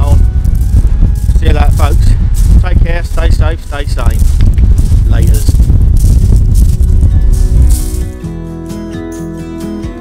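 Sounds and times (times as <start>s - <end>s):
wind buffeting microphone: 0.0s - 8.3s
background music: 6.6s - 10.0s.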